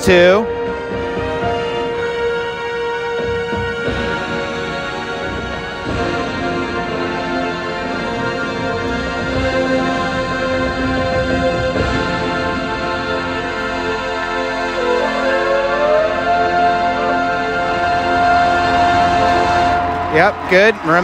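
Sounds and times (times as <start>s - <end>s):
marching band playing chords: 0.0s - 21.0s
long held high note: 12.8s - 20.8s.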